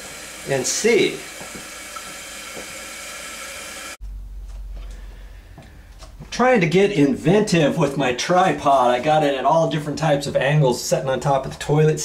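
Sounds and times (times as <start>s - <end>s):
toilet tank refilling hiss: 0.0s - 4.0s.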